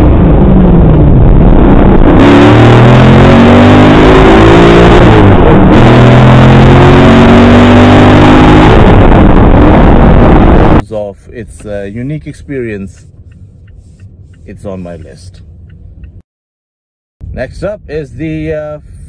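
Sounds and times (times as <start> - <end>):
car engine accelerating hard: 0.0 - 10.8.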